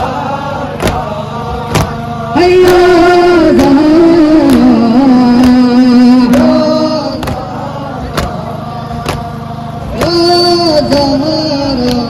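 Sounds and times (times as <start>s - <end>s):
crowd beating chests in unison: 0.0s - 12.0s
man singing long held note: 0.0s - 12.0s.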